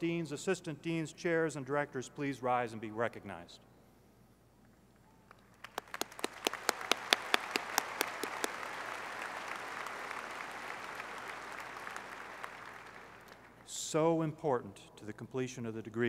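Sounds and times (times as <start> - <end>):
audience applause: 5.6 - 13.6.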